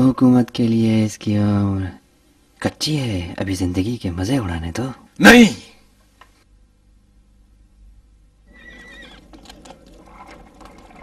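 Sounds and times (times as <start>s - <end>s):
horse whinny: 8.5s - 11.0s.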